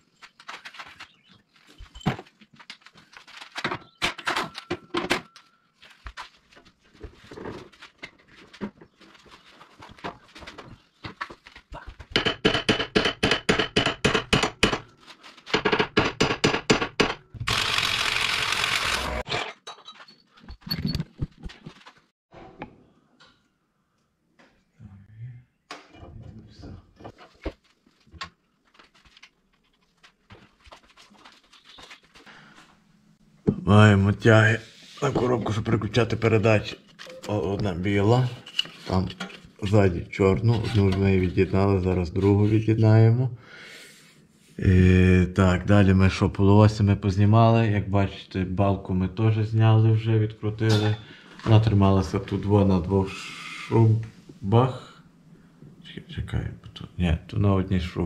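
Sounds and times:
tools clanking and knocking: 3.5 - 5.6, 19.3 - 23.4.

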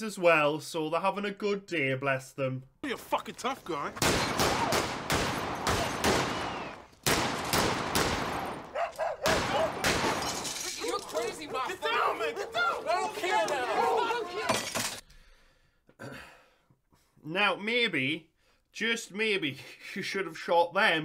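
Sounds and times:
men talking: 0.0 - 4.8, 9.3 - 14.9
sharp bangs and crashes: 3.1 - 11.9
voices shouting: 3.8 - 6.9, 8.3 - 14.8.

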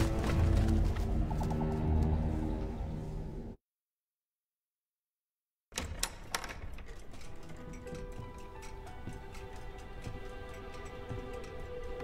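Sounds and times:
quiet film score: 0.0 - 3.6, 5.7 - 12.0.

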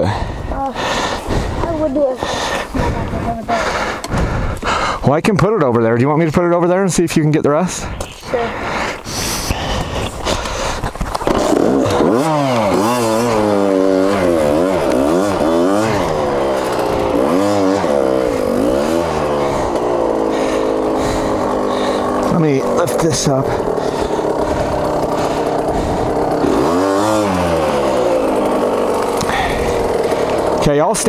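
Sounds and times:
dirt bike engine revving: 0.0 - 5.0, 5.6 - 31.0.

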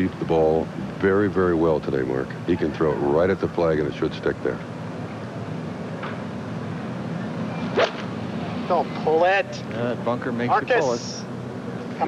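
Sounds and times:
outdoor background noise: 0.0 - 12.0
golf club hitting ball: 7.8 - 8.1.

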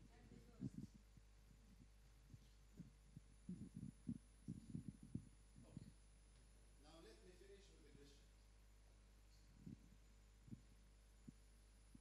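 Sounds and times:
faint low thumps: 0.0 - 8.1, 8.7 - 12.0
room hum: 0.0 - 12.0.

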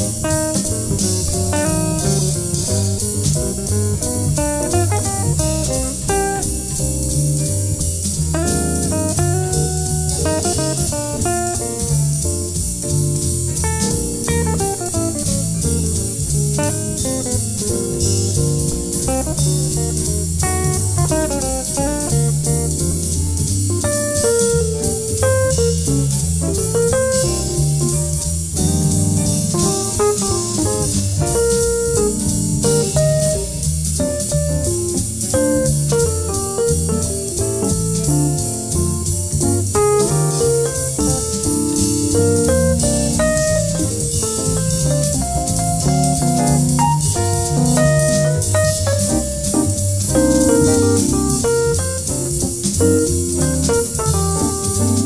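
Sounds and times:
cymbal and drum beat: 0.0 - 55.0
jazz electric guitar lines: 0.0 - 55.0
piano chords: 0.0 - 55.0.

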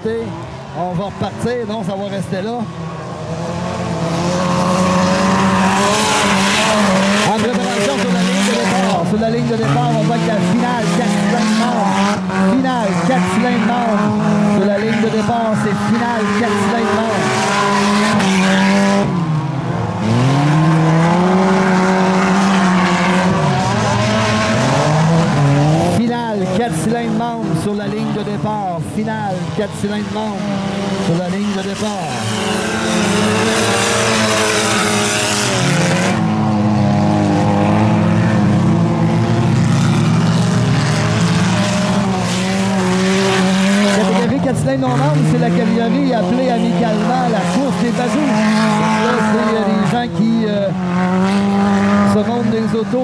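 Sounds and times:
racing car engines at high revs: 0.0 - 53.0.

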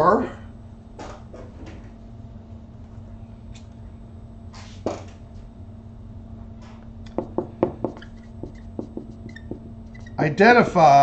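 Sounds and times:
low electrical hum: 0.0 - 11.0
marker rustle: 7.8 - 10.1.

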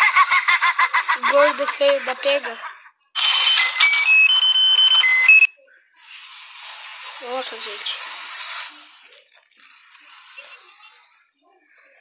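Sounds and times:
electronic beeping tune: 3.2 - 5.5.

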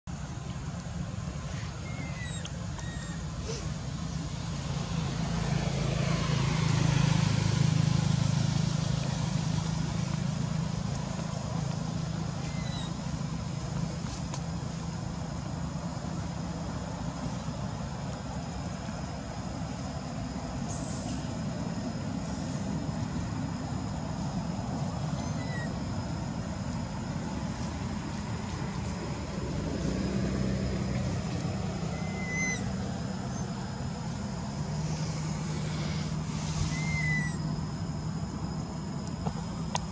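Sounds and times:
vehicle engine running: 2.2 - 39.9.

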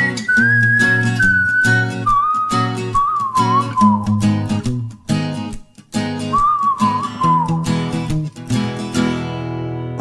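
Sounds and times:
person whistling: 0.0 - 4.5, 6.2 - 7.9
acoustic guitar strumming: 0.0 - 10.0.

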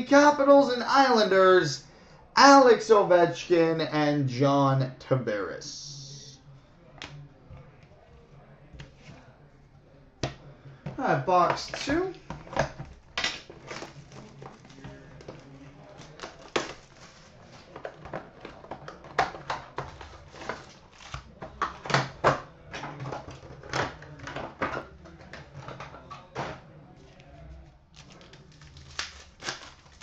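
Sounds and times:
wrappers crinkling and rustling: 11.7 - 19.0, 27.0 - 30.0.

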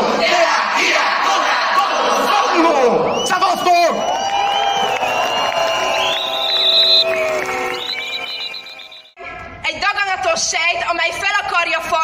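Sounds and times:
crowd noise: 0.0 - 9.8
whistles blowing: 3.0 - 9.2.

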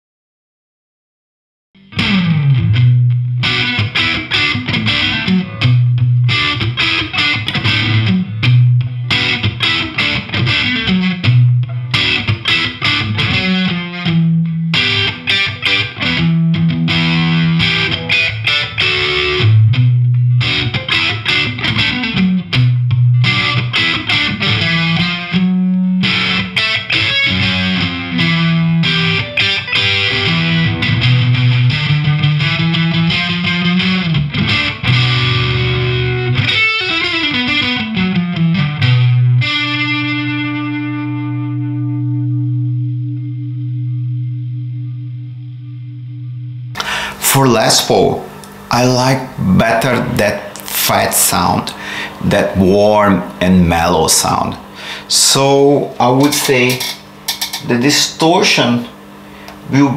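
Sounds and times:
distorted electric guitar: 1.8 - 59.9.

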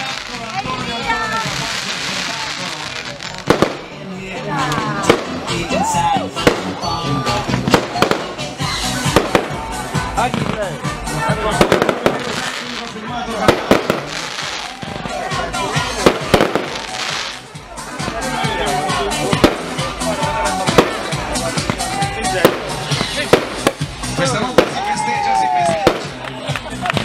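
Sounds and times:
fireworks bangs and crackles: 0.0 - 27.0
music: 0.0 - 27.0
voices: 0.0 - 27.0.

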